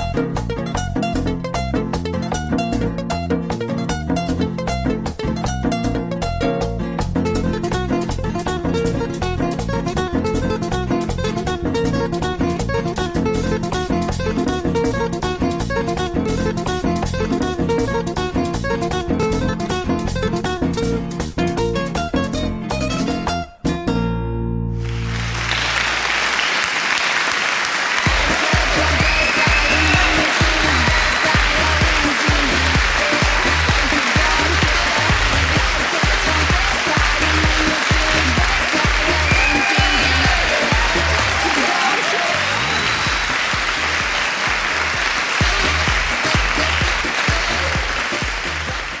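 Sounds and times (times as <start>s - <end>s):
music with steady bass beat: 0.0s - 24.9s, 28.1s - 41.8s, 42.6s - 49.0s
audience applauding: 24.8s - 49.0s.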